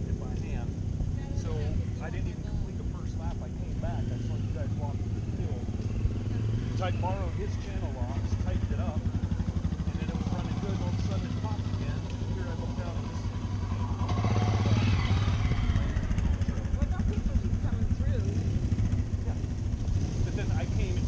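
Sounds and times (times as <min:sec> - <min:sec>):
dirt bike engines running: 0:00.0 - 0:21.0
dirt bike riding past: 0:00.0 - 0:21.0.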